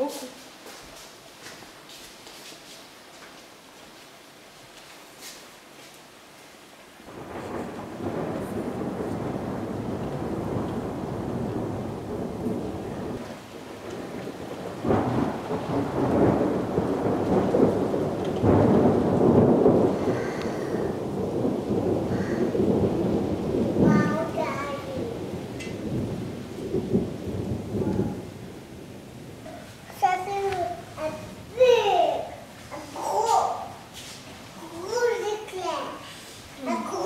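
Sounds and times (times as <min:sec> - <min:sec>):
rain: 0:00.0 - 0:37.0
thunder rumbling: 0:07.1 - 0:37.0.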